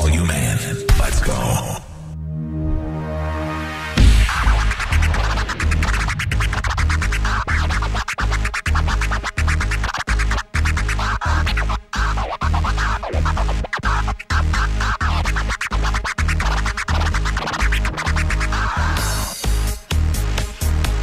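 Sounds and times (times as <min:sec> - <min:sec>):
steady bass beat: 0:03.9 - 0:21.0
record scratching: 0:04.0 - 0:19.2.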